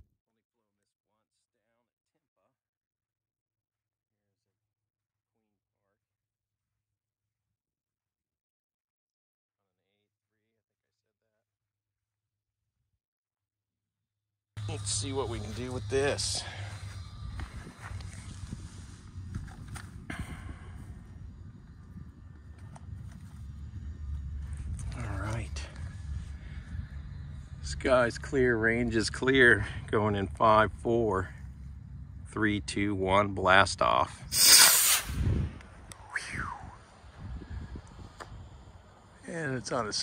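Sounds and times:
footsteps on dry grass: 14.6 - 20.1
low rumble: 14.6 - 34.4, 35.0 - 39.4
falling whistled note: 34.3 - 36.8.

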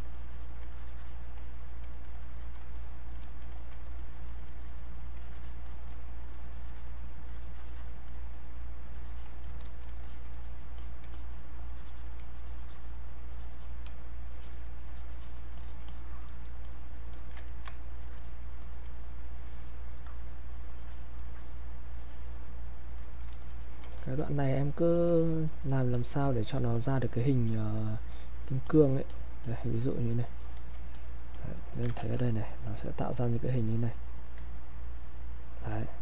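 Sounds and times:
stylus scratching on graphics tablet: 0.0 - 8.2, 8.8 - 19.9, 20.6 - 22.4, 23.0 - 27.9, 28.5 - 31.1.

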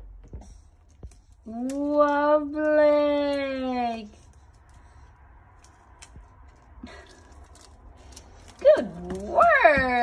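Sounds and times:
paper clicks and rustles: 4.1 - 10.0.

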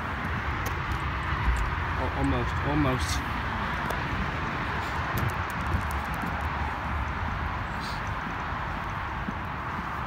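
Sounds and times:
footsteps on concrete: 0.0 - 10.0
wind rumbling on microphone: 0.0 - 10.0.

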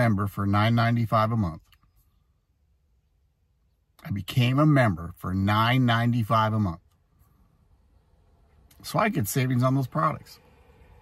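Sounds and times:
faint low car cabin rumble: 0.0 - 11.0.

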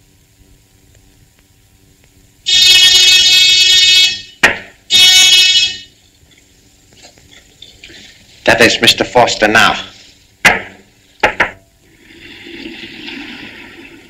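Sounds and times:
electric buzzer: 2.5 - 6.0.

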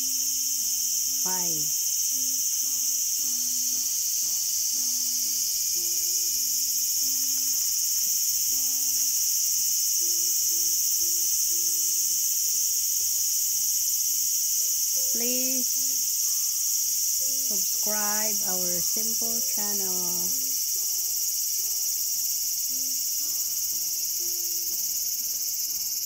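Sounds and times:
cicadas buzzing: 0.0 - 26.0.

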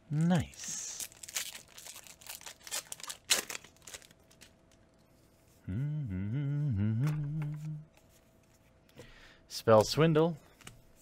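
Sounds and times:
foil wrapper crinkling and tearing: 0.2 - 4.5.

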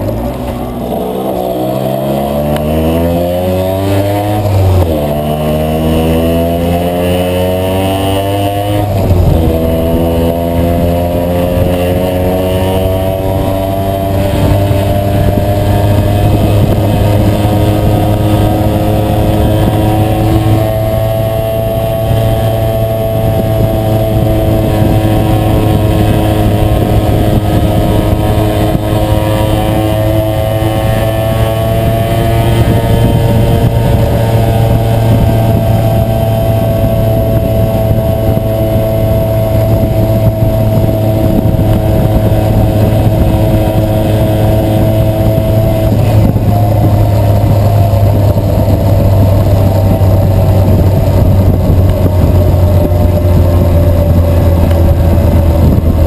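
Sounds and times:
two-stroke moped engine cruising: 0.0 - 56.0.

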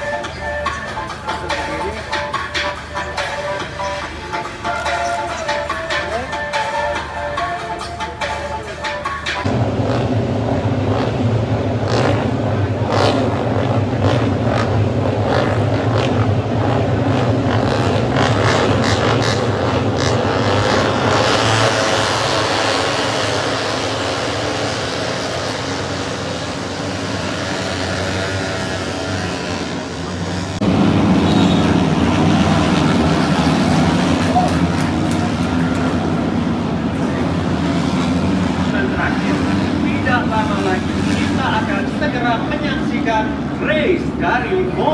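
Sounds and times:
racing motorcycles passing: 0.0 - 44.9.

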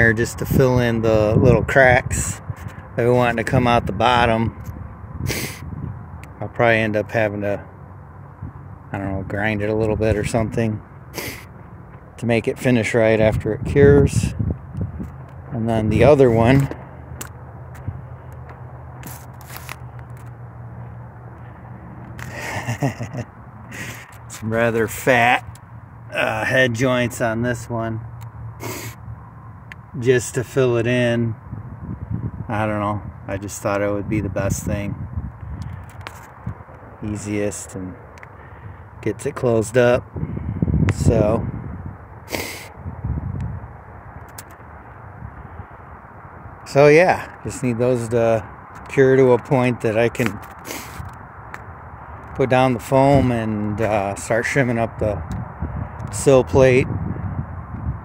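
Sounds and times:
low outdoor rumble: 0.0 - 58.0
footsteps on dry dirt: 16.5 - 21.4.

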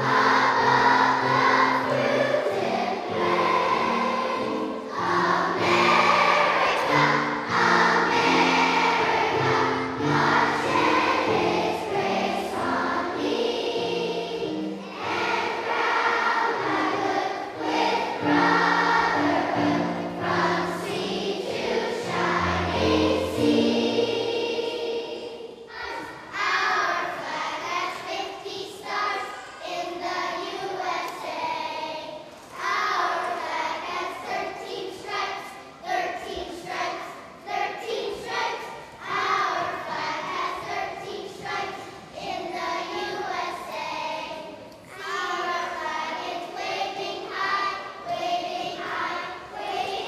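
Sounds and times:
children singing together: 0.0 - 50.0.

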